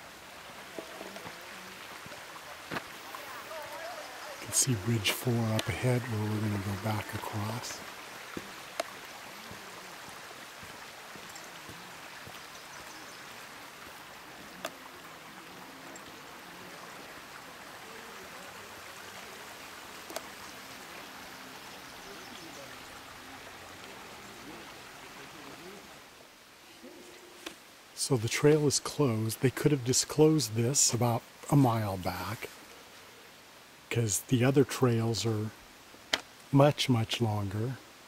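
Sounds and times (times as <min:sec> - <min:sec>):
creek flowing over rocks: 0:00.0 - 0:38.0.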